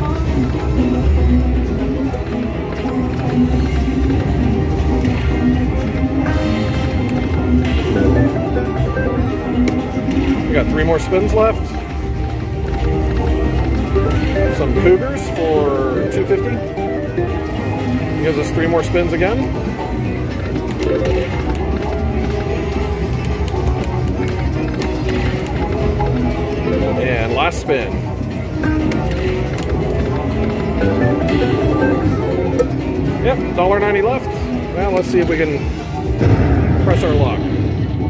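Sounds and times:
slot machine music: 0.0s - 38.0s.

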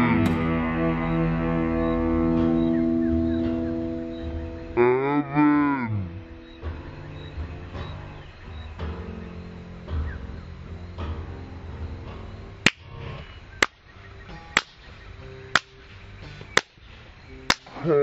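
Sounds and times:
acoustic blues guitars: 0.0s - 18.0s.

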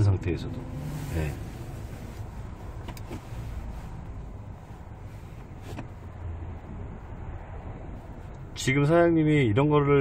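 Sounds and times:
car engine rumble from inside cabin: 0.0s - 10.0s.

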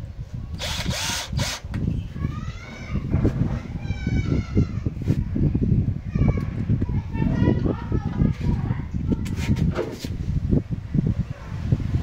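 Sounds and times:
drill driving a screw: 0.6s - 1.6s.

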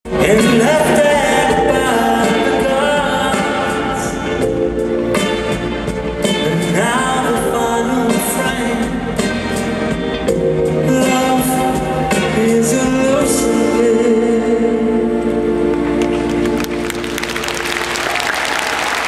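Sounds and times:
man singing ballad: 0.1s - 4.8s, 6.2s - 15.6s.

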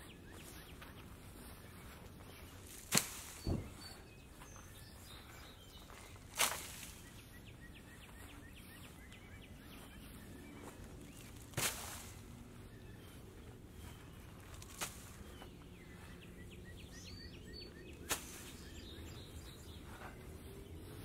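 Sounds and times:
faint birds chirping: 0.0s - 21.0s
spade striking turf and soil: 2.5s - 4.0s, 5.9s - 7.3s, 11.2s - 12.4s, 14.4s - 15.4s, 18.0s - 18.8s.

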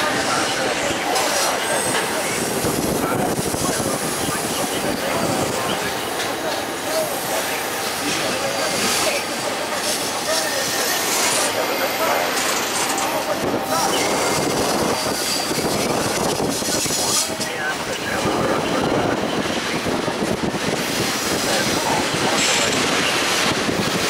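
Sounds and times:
freight train rolling on rails: 0.0s - 24.0s.

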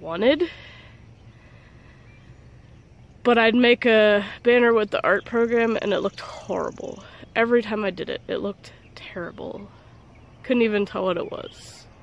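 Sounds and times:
low uneven rumble: 0.0s - 12.0s.

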